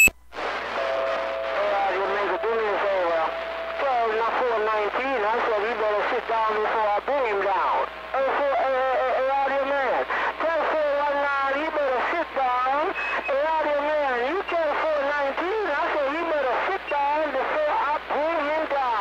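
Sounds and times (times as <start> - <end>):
faint low hum: 0.0 - 19.0
speech over cb radio: 0.4 - 19.0.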